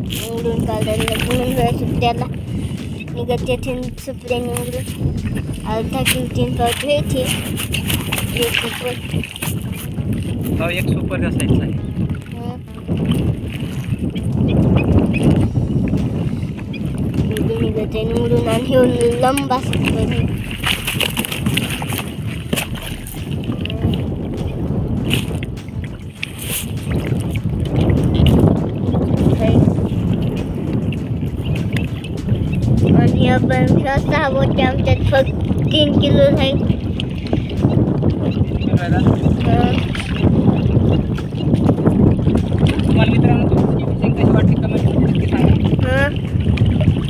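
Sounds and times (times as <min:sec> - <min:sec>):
water splashes and drips: 0:00.0 - 0:10.5, 0:17.0 - 0:38.2, 0:39.3 - 0:43.1
wind on microphone: 0:00.0 - 0:47.0.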